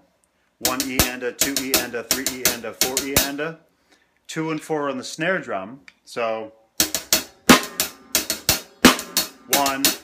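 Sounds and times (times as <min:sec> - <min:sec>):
snare drum hits: 0:00.6 - 0:03.3.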